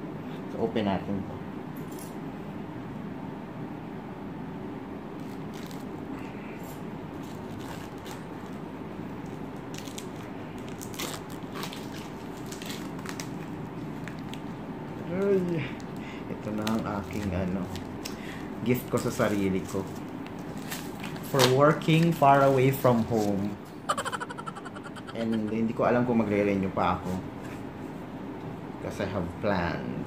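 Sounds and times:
steady background hum: 0.0s - 30.0s.

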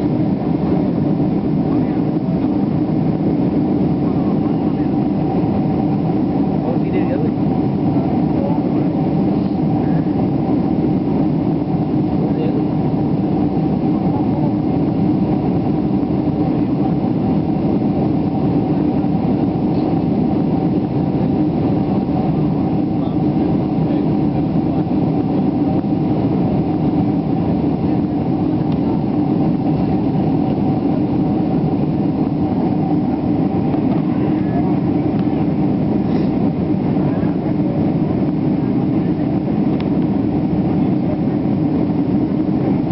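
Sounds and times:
jet cabin engine drone: 0.0s - 42.9s
steady hum: 0.0s - 42.9s.

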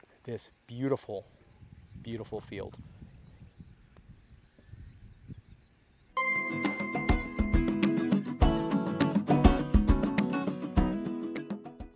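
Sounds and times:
insect high-pitched call: 0.0s - 7.9s.

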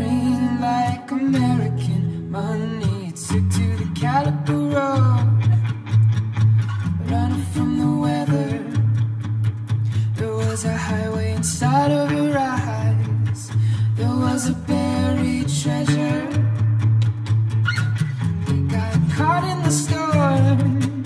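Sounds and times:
man singing: 0.0s - 5.7s, 7.0s - 8.9s, 10.1s - 16.6s, 18.5s - 21.0s
strummed acoustic guitar: 0.0s - 21.0s.

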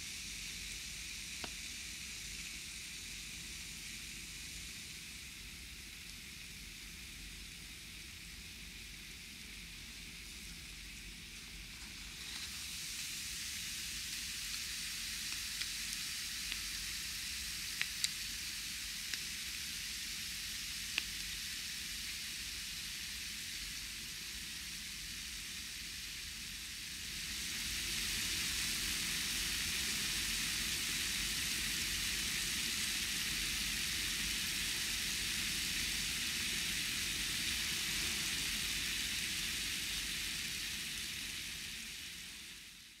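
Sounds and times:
steady hiss: 0.0s - 43.0s.

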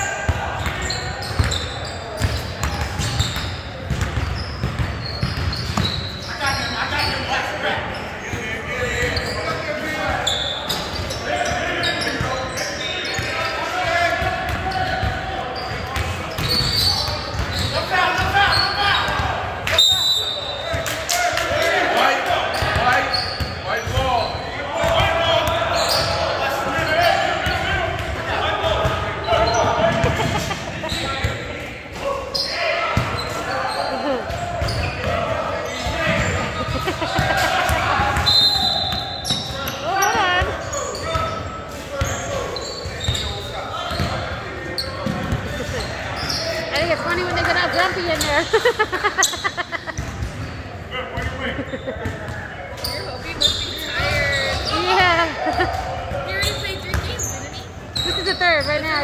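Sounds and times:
players shouting and chatter: 0.0s - 59.0s.

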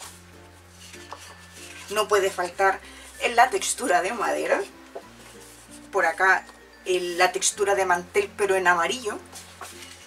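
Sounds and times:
soft background music: 0.0s - 10.0s
stiff paper sheets handled: 9.3s - 10.0s.

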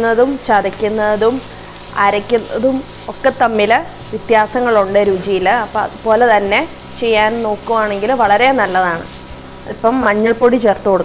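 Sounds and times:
woman speaking: 0.0s - 9.1s, 9.7s - 11.0s
onions and chillies sizzling: 0.0s - 11.0s.

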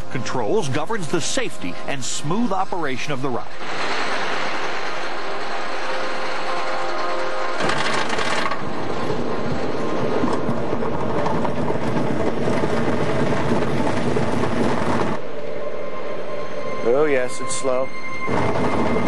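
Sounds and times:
roller coaster clattering on track: 0.0s - 15.3s, 18.3s - 19.0s.

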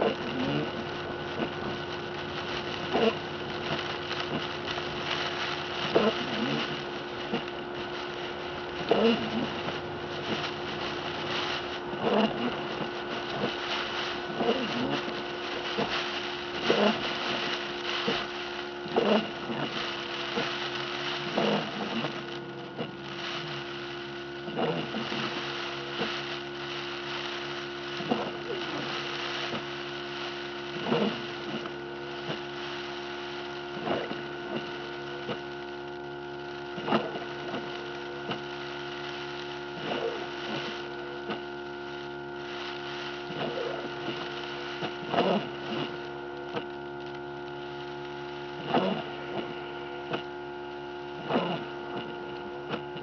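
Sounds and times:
idling car cabin hum: 0.0s - 53.0s.

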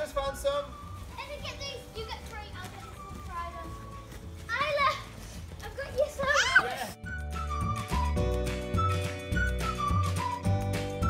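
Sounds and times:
young children playing: 1.0s - 7.0s.

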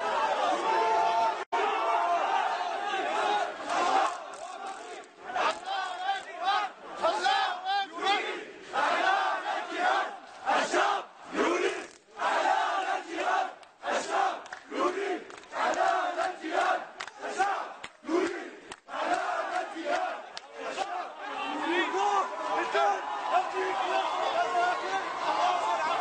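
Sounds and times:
crowd chanting slogans: 0.0s - 26.0s.

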